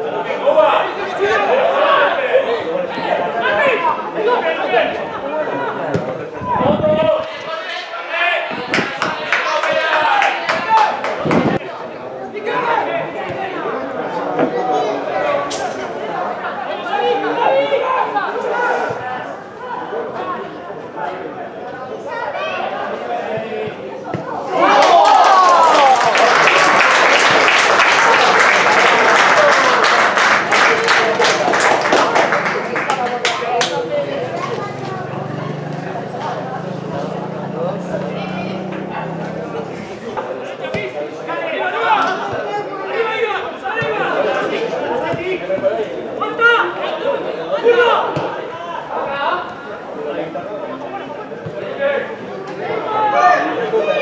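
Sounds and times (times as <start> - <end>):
crowd shouting and calling: 0.0 - 54.0.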